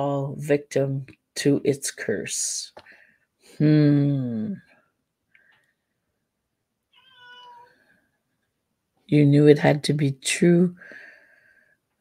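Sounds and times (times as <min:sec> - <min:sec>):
faint cat-like meow: 0:06.9 - 0:07.9.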